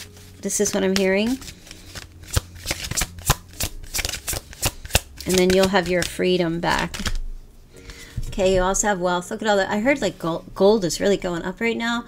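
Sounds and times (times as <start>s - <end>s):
cards shuffling: 0.0s - 7.2s.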